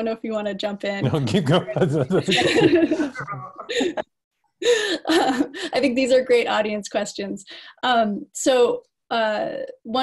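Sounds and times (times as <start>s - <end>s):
man speaking: 1.0s - 3.8s
man chuckling: 1.4s - 4.1s.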